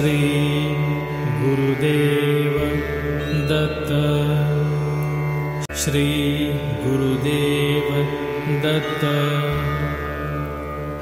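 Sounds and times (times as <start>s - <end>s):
music drone of held tones: 0.0s - 11.0s.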